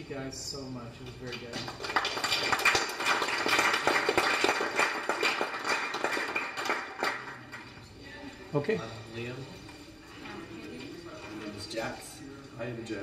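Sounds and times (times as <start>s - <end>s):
audience applauding: 1.5s - 7.7s.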